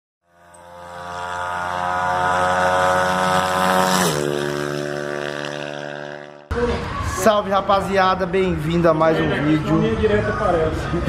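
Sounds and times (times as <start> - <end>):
engine-like drone: 0.2 - 11.0.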